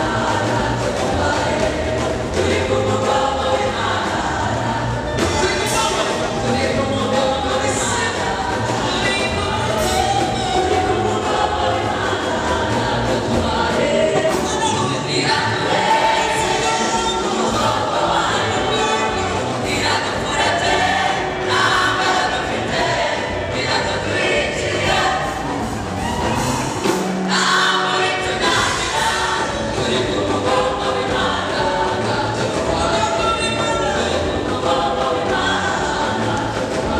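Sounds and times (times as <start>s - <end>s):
choir singing gospel song: 0.0s - 36.9s.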